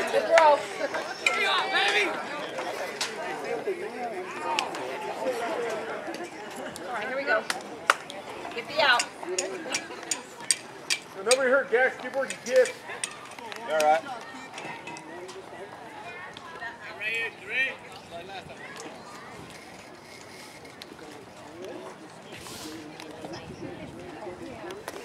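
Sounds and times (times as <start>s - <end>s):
voices shouting: 0.0s - 6.0s
chatter: 0.0s - 25.0s.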